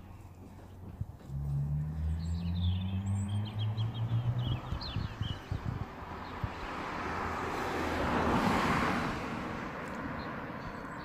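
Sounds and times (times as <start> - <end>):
road vehicle passing: 0.0 - 11.0.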